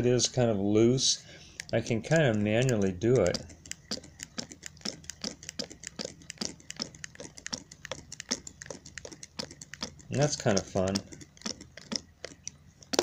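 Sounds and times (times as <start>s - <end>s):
engine mechanism clicking rapidly: 1.5s - 13.0s
flywheel spinning: 1.5s - 13.0s.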